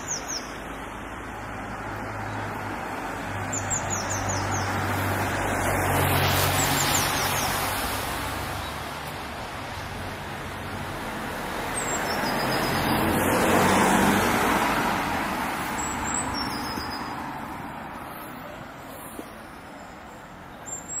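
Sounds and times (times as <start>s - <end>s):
cars passing: 0.0s - 21.0s.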